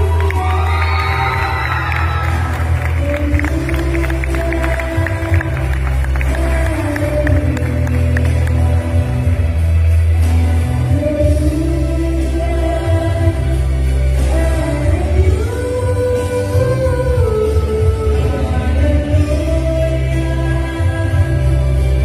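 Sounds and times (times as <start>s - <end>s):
audience cheering: 0.0s - 6.5s
loud live music with heavy bass: 0.0s - 22.0s.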